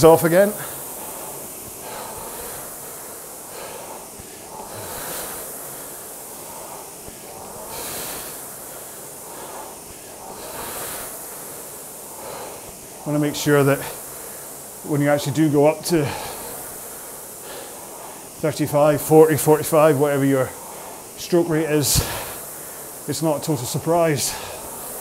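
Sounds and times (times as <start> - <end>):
person breathing: 0.0 - 25.0
rowing machine flywheel whooshing: 0.0 - 25.0.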